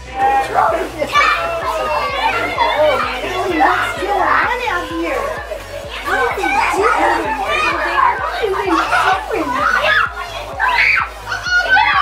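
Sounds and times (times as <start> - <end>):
children shouting excitedly: 0.0 - 12.0.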